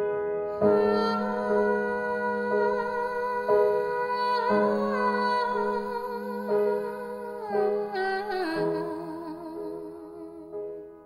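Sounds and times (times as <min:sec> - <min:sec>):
person humming a melody: 0:00.5 - 0:10.8.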